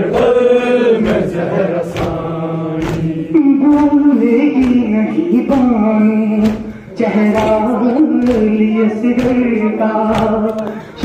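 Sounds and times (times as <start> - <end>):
voices chanting a lament: 0.0 - 11.0
hands slapping chest: 1.9 - 4.0.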